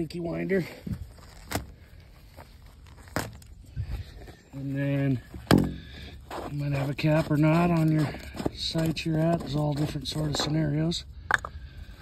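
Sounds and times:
footsteps on pine needles: 0.8s - 5.5s
dull thump: 5.4s - 5.9s.

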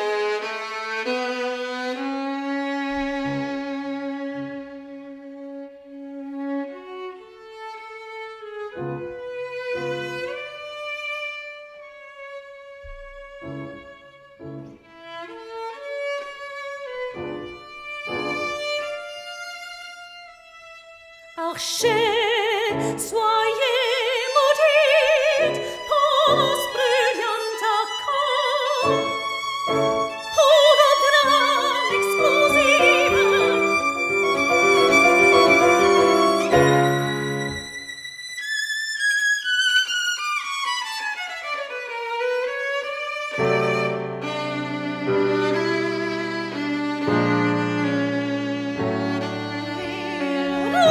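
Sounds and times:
violin melody: 0.0s - 50.9s
piano chords: 12.9s - 15.0s, 16.9s - 19.1s, 21.8s - 38.1s, 43.4s - 50.9s
soft piano chords: 31.2s - 37.8s, 44.1s - 50.9s.

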